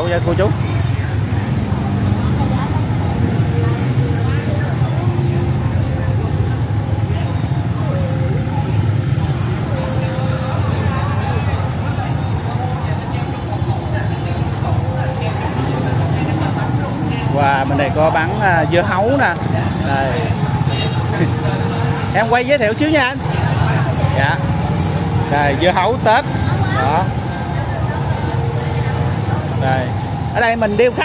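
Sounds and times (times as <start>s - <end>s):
crowd voices: 0.0s - 31.0s
motorbike engines humming: 0.0s - 31.0s.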